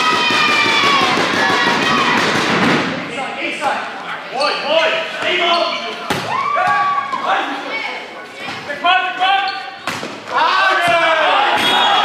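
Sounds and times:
crowd cheering: 0.0s - 2.5s, 10.3s - 12.0s
players shouting: 0.0s - 2.5s, 10.3s - 12.0s.

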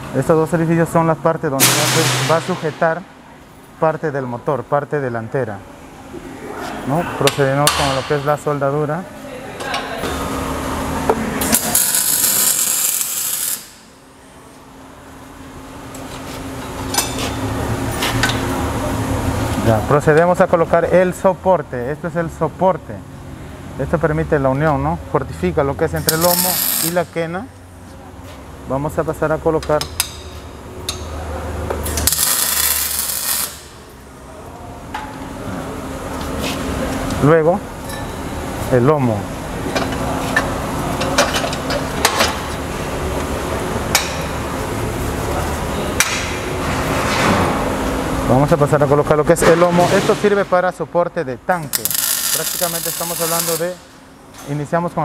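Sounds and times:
welder arc crackling: 11.6s - 13.8s, 26.1s - 27.0s, 31.9s - 33.8s, 51.7s - 53.8s.

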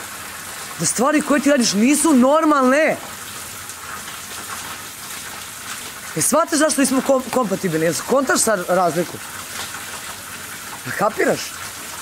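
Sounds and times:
light rain falling: 0.0s - 12.0s.

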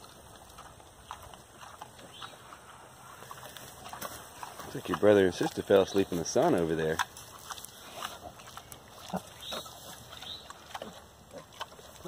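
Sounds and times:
pigs snuffling and grunting: 0.0s - 12.0s.

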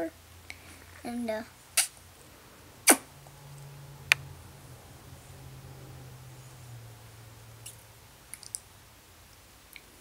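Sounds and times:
low hum: 1.5s - 9.6s.

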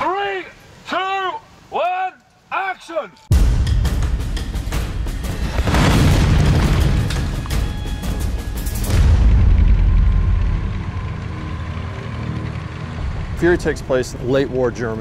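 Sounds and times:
dramatic music: 3.3s - 14.9s
heavy booms: 5.4s - 7.7s, 8.8s - 11.4s.

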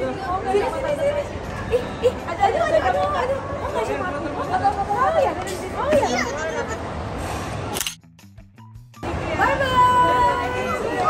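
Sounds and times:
people chattering: 0.0s - 7.7s, 9.0s - 11.0s
crowd babble: 0.0s - 7.9s, 9.0s - 11.0s.

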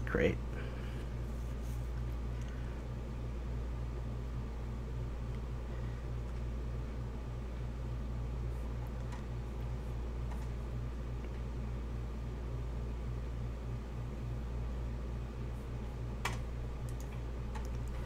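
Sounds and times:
low machine hum: 0.0s - 18.0s.

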